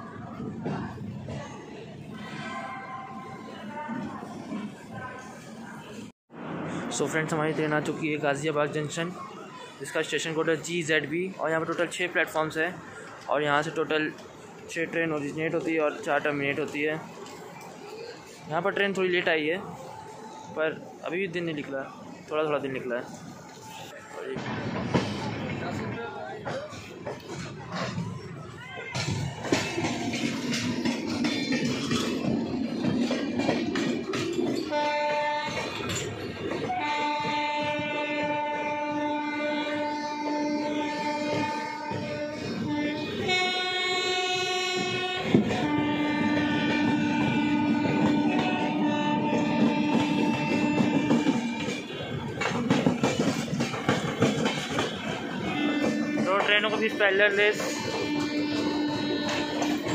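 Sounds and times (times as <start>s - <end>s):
train running noise: 0.0s - 59.9s
locomotive horn blasts: 34.6s - 36.0s, 36.6s - 52.1s, 54.8s - 59.9s.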